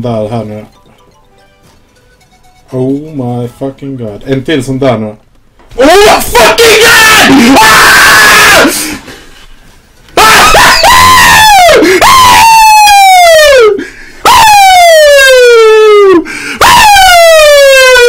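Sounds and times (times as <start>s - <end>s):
man yelling: 5.8s - 8.8s, 10.2s - 13.7s, 14.3s - 18.0s
loud excited screams: 5.8s - 8.9s, 10.2s - 18.0s.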